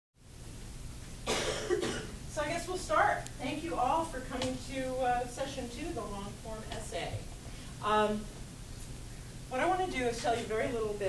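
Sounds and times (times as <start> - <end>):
low room hum: 0.2 - 11.0
person coughing: 1.2 - 2.2.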